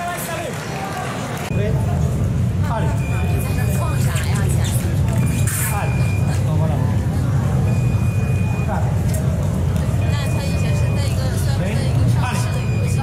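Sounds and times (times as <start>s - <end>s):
voices: 0.0s - 13.0s
high electronic beep: 2.7s - 4.1s, 5.1s - 6.6s, 7.6s - 8.9s, 9.9s - 11.4s, 12.2s - 13.0s.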